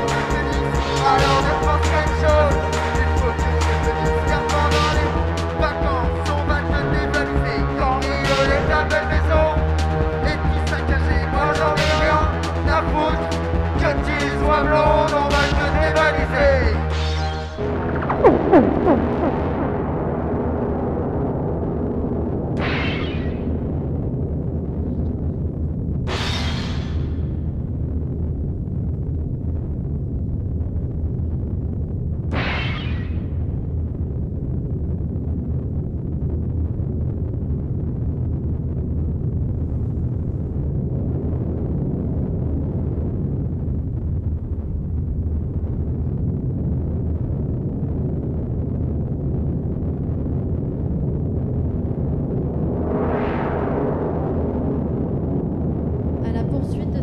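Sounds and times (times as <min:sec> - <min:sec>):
low electronic drone: 0:00.0 - 0:35.1, 0:36.2 - 0:57.0
noise bursts sweeping up: 0:15.3 - 0:24.8, 0:49.0 - 0:57.0.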